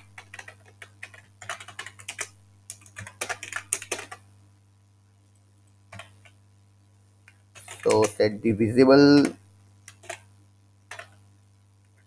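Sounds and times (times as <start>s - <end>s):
typing on computer keyboard: 0.0s - 4.2s, 5.9s - 6.4s, 7.6s - 8.2s, 9.2s - 10.3s, 10.9s - 11.2s.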